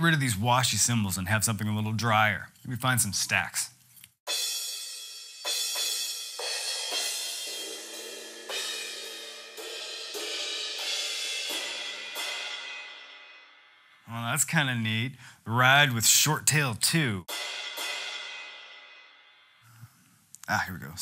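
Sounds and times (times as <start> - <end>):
ride cymbal hits ringing: 4.3 - 14.1, 17.3 - 19.7.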